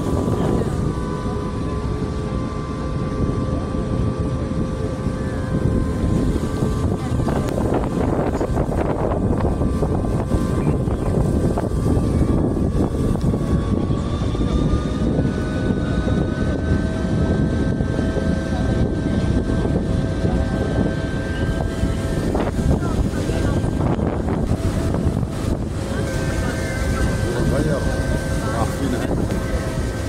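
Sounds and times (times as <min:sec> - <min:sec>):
boat engine running: 0:00.0 - 0:30.0
faint steady engine tones: 0:00.0 - 0:30.0
wind buffeting microphone: 0:00.0 - 0:30.0.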